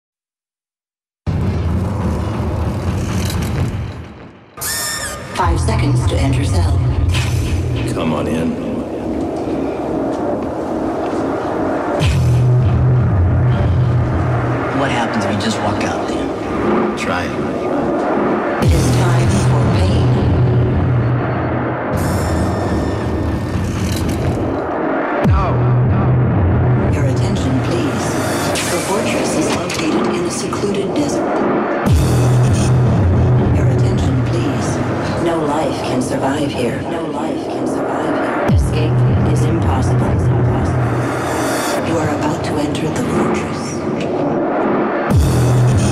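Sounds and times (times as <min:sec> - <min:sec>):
dense noise layer: 0:01.3 - 0:45.9
low synth drone: 0:01.3 - 0:45.9
machine-like low rumble with hiss: 0:05.4 - 0:24.6.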